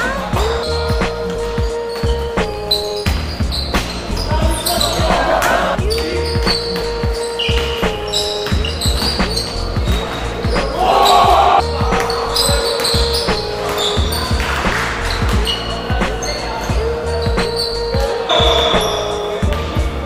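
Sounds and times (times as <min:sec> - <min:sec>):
players calling out: 0:00.0 - 0:20.0
basketball bouncing on wooden floor: 0:03.0 - 0:04.5.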